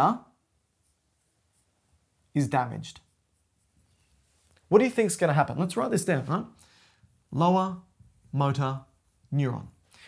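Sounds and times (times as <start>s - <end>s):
marker scratching on whiteboard: 0.6s - 10.0s
person speaking: 1.5s - 3.6s, 4.4s - 10.0s.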